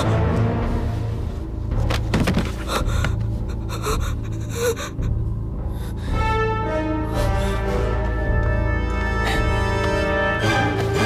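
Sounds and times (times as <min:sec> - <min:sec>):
low sustained music: 0:00.0 - 0:11.0
boy gasping and breathing hard: 0:02.4 - 0:06.3.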